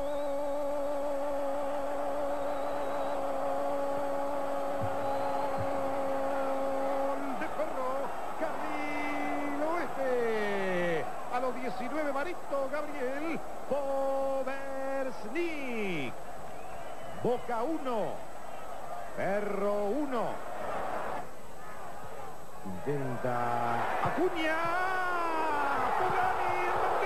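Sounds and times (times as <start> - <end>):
commentator's held goal cry: 23.6 - 27.0.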